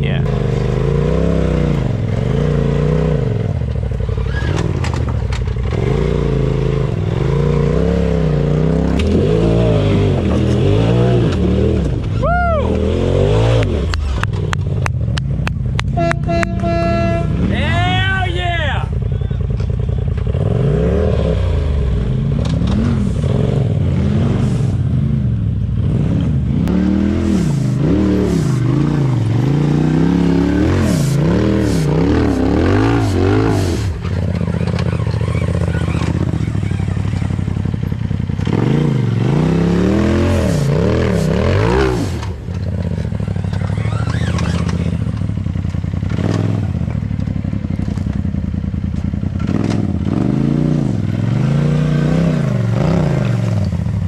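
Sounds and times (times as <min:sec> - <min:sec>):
engine revving in short blips: 0:26.2 - 0:37.4, 0:43.2 - 0:45.3.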